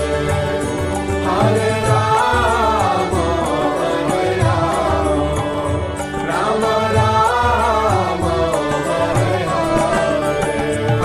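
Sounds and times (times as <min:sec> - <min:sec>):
instrumental backing: 0:00.0 - 0:11.0
steady percussion beat: 0:00.0 - 0:11.0
person chanting a sung melody: 0:01.3 - 0:11.0.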